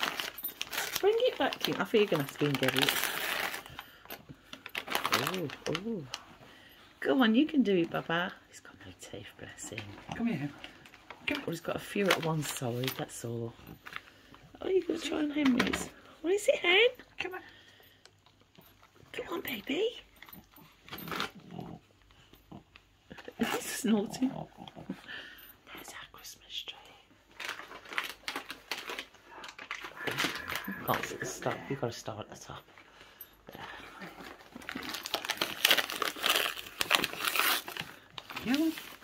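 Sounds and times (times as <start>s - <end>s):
wrapping paper crinkling: 0.0s - 6.8s, 27.3s - 32.0s, 33.7s - 39.0s.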